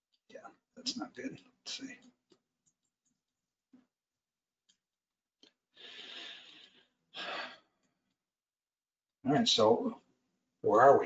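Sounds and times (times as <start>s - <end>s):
man breathing into microphone: 5.8s - 6.8s.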